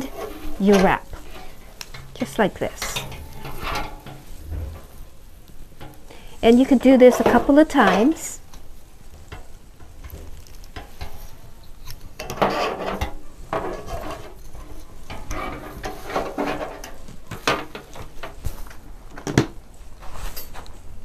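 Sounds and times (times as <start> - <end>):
wire clicking on metal frame: 0.0 - 18.8
dry stems crackling and rustling: 0.0 - 20.8.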